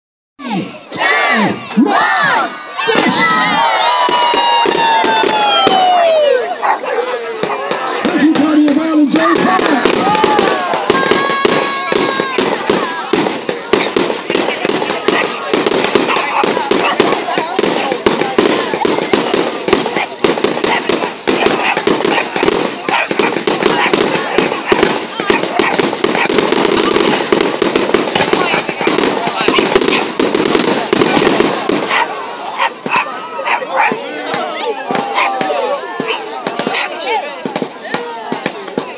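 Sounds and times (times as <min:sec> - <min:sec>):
fireworks bangs and crackles: 0:02.5 - 0:38.9.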